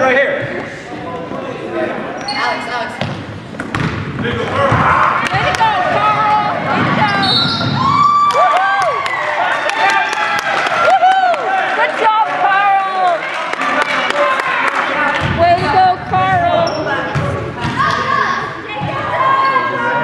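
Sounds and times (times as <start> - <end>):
shoes squeaking on hardwood floor: 2.1 - 4.6, 6.8 - 7.9
basketball bouncing: 3.0 - 8.0.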